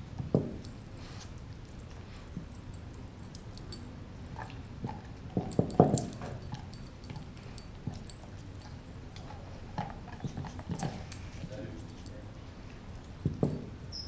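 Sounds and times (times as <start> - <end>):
dog teeth gnawing bone: 3.4 - 11.5.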